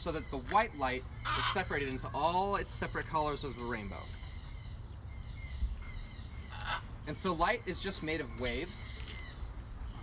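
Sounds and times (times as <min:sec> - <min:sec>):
faint bird calls: 0:00.0 - 0:10.0.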